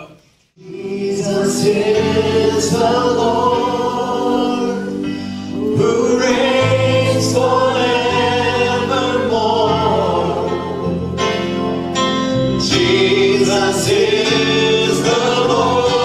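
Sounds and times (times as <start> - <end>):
choir singing long held notes: 0.6 - 16.0.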